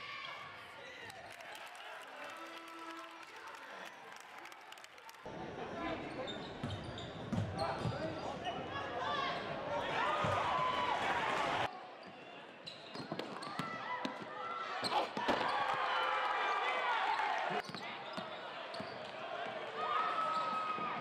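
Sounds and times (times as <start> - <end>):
sneakers squeaking: 5.8 - 8.6, 12.0 - 14.2, 14.8 - 15.6, 17.6 - 19.2, 20.1 - 21.0.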